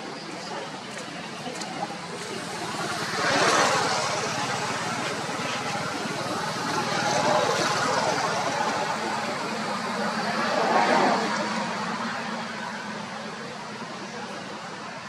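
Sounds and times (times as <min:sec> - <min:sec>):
vehicle traffic passing: 0:00.0 - 0:15.0.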